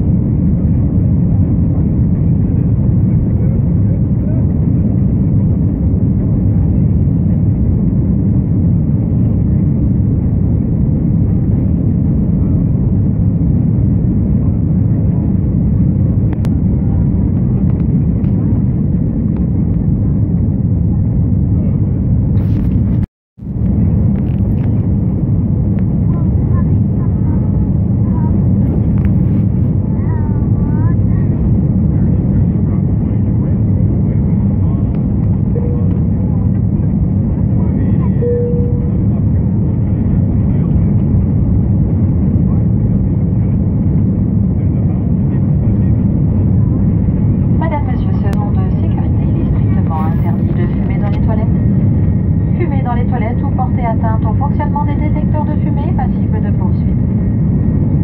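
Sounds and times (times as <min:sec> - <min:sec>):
indistinct passenger voices: 0:00.0 - 0:22.7, 0:23.6 - 0:58.0
jet engine and airflow rumble: 0:00.0 - 0:58.0.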